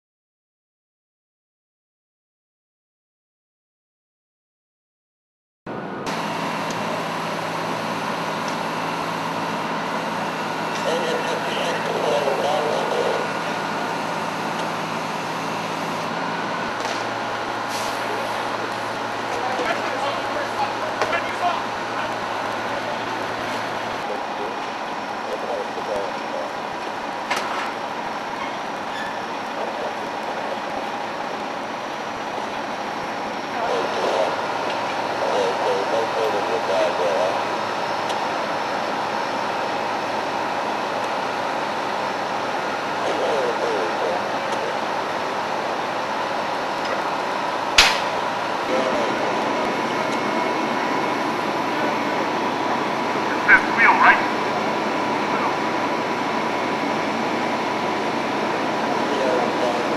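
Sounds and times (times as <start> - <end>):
fire apparatus drone: 5.7 - 59.9
indistinct voices: 9.9 - 16.8, 17.9 - 26.7, 33.5 - 37.7, 42.8 - 47.1, 48.1 - 57.3, 58.0 - 59.9
sharp knock: 47.8 - 48.1.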